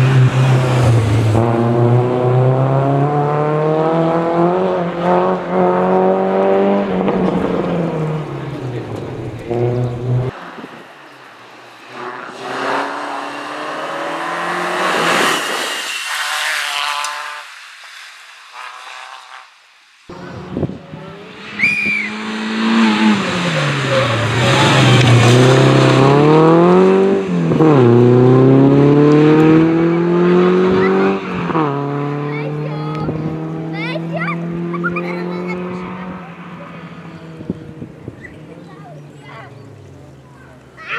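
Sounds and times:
rally car engine at full throttle: 0.0s - 19.4s, 20.1s - 40.9s
tyre squeal: 21.5s - 22.2s.

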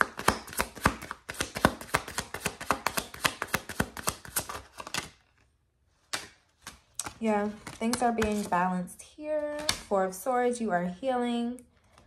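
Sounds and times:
cards being shuffled: 0.0s - 8.6s.

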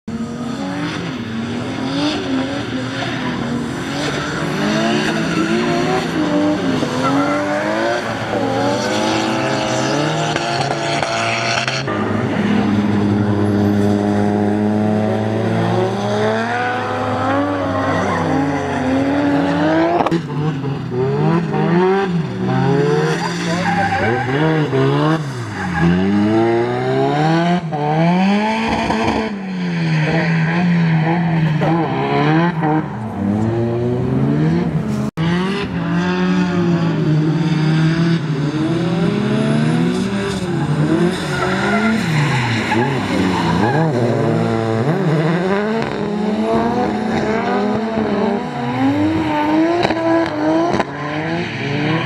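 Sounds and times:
car engines revving hard: 0.1s - 52.0s.

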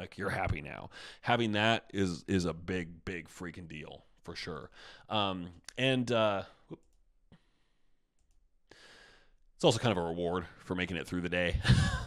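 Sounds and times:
man's quiet intake of breath: 0.9s - 1.3s, 4.7s - 5.1s, 8.7s - 9.4s.

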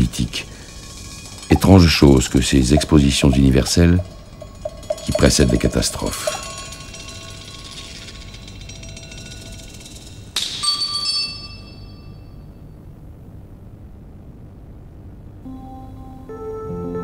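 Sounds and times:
faint steady hiss: 0.0s - 17.0s
bell-like chime tones: 0.6s - 7.8s.

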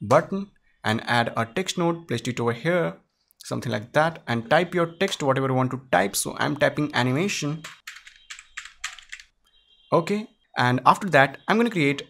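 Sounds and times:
computer keyboard typing: 6.8s - 9.3s.

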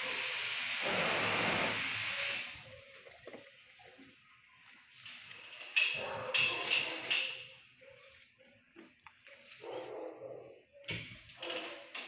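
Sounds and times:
dogs barking: 5.9s - 7.2s, 9.6s - 10.8s.

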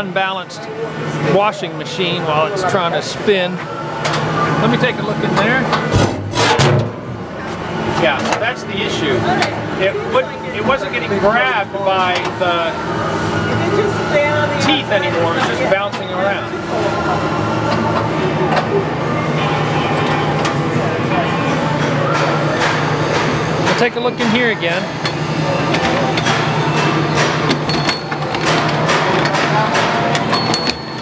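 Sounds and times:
low machine hum: 0.0s - 31.0s.

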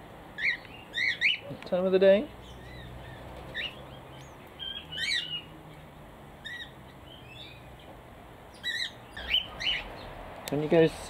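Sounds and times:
small birds chirping: 0.3s - 11.0s.

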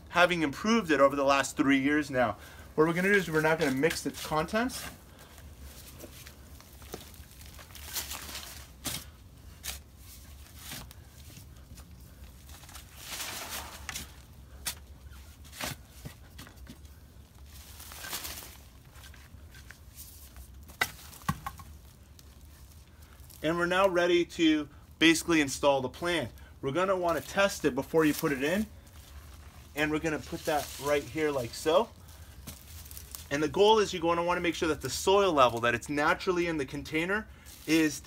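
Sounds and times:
shovel scraping soil: 12.8s - 14.8s.

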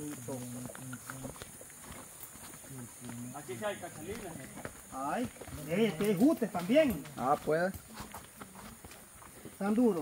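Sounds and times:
footsteps on muddy dirt trail: 0.0s - 10.0s
voices: 0.0s - 10.0s.

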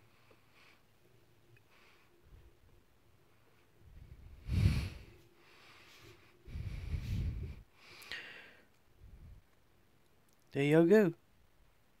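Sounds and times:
person breathing: 0.0s - 2.6s, 3.2s - 9.4s.

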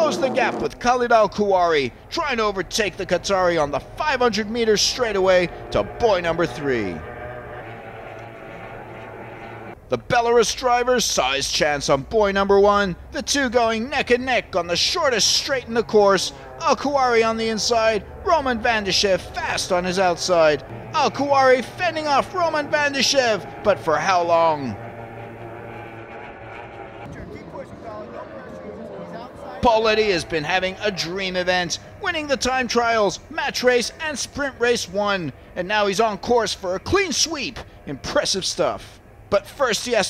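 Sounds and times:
distant racing boat engines droning: 0.0s - 40.0s
faint voices: 26.9s - 32.8s.

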